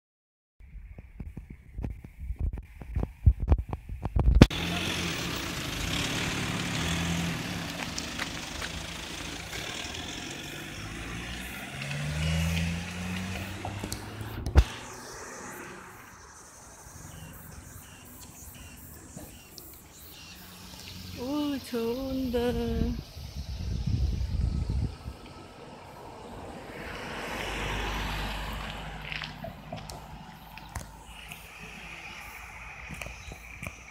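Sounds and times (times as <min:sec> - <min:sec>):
wind buffeting microphone: 0:00.6 - 0:04.5, 0:22.2 - 0:25.6
car engines passing: 0:04.4 - 0:33.9.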